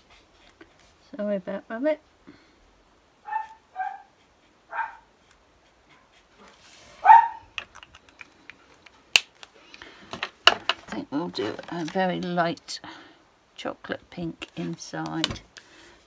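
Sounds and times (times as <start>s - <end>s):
small dog barking: 3.2s - 4.1s, 4.7s - 5.1s, 7.0s - 7.5s.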